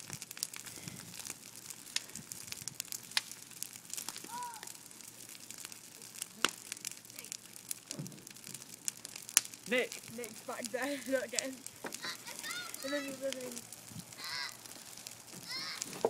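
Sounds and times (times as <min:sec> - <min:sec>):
brush fire crackling: 0:00.0 - 0:16.0
burning branches popping: 0:00.0 - 0:16.0.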